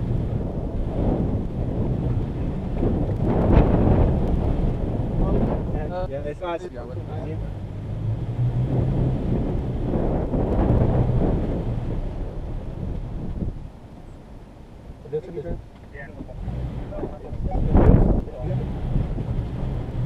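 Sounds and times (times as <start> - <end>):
truck engine at low revs: 0.0 - 20.0.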